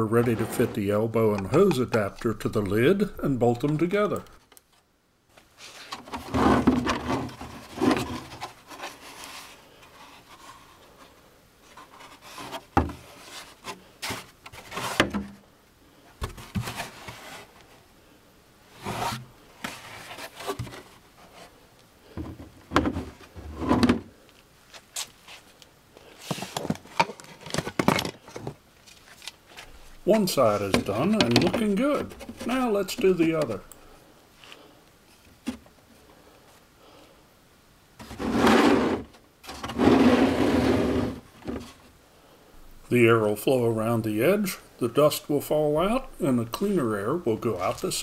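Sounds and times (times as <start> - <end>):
hard plastic parts rubbing and knocking: 5.7 - 15.4, 22.1 - 24.1, 30.1 - 33.6.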